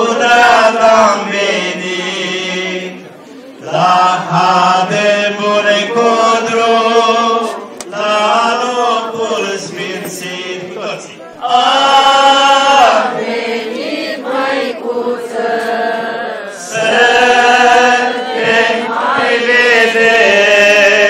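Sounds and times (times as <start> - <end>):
liturgical chant singing: 0.0 - 21.0.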